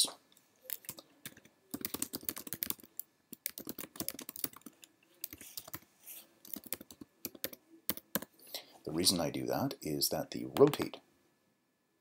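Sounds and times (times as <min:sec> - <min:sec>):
typing on computer keyboard: 0:00.7 - 0:05.8, 0:06.4 - 0:08.3.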